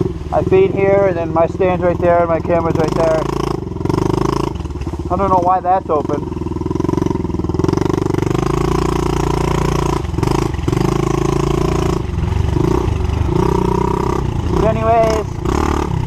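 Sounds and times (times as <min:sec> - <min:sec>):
motorbike engine revving: 0:00.0 - 0:16.0.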